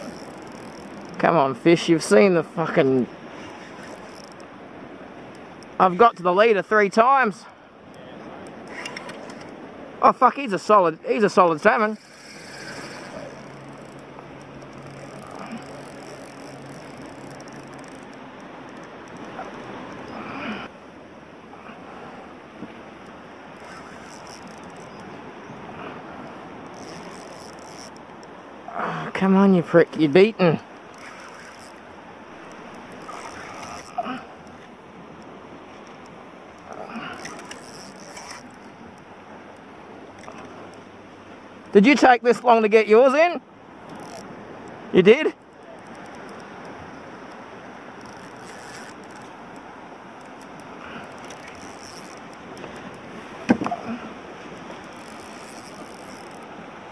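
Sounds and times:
fishing reel clicking and whirring: 0:00.0 - 0:01.2, 0:03.3 - 0:04.6, 0:11.6 - 0:19.9, 0:23.0 - 0:25.2, 0:26.5 - 0:28.3, 0:30.7 - 0:40.8, 0:43.9 - 0:53.0, 0:54.5 - 0:56.6
water noise: 0:00.0 - 0:56.9
wind: 0:00.0 - 0:56.9.

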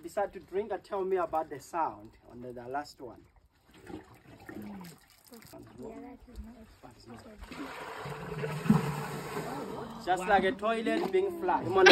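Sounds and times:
elephant drinking through trunk: 0:03.2 - 0:06.6.

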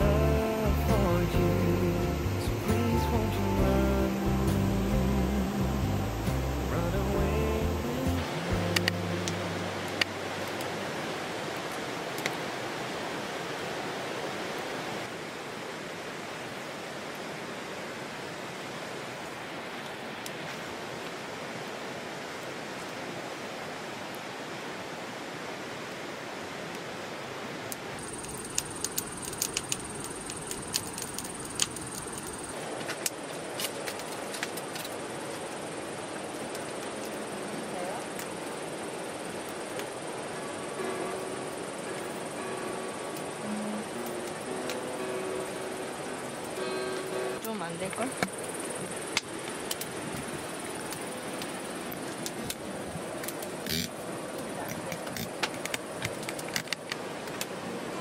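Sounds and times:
high insect buzz: 0:00.0 - 0:10.1, 0:37.0 - 0:56.1
mountain stream flowing over rocks: 0:00.0 - 0:58.0
small clicks: 0:28.0 - 0:32.4.

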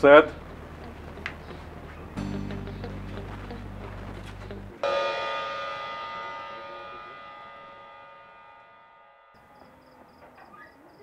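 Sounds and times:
dramatic ringing chord: 0:02.2 - 0:10.3
night insects chirping: 0:09.3 - 0:11.0.

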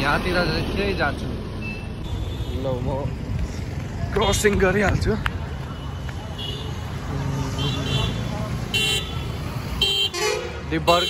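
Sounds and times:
traffic passing: 0:00.0 - 0:11.0.

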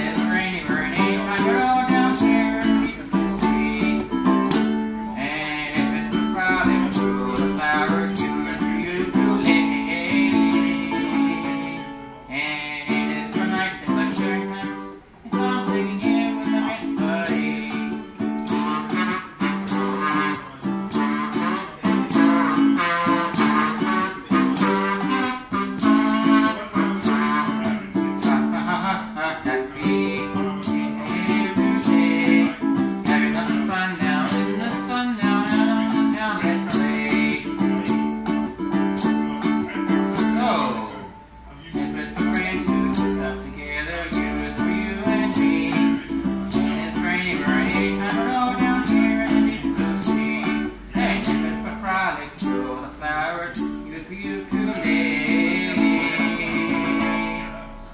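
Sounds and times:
man singing into microphone: 0:00.0 - 0:38.0, 0:39.0 - 0:57.9
acoustic guitar strumming: 0:00.0 - 0:57.9.

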